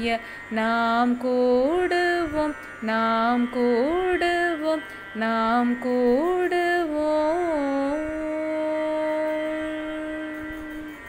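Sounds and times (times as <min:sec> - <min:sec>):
faint musical accompaniment: 0:00.0 - 0:11.0
woman singing long note: 0:00.0 - 0:11.0.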